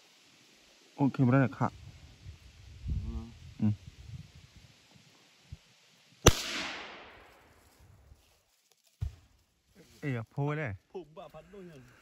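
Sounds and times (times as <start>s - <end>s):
gunshot with echo: 6.2s - 7.3s.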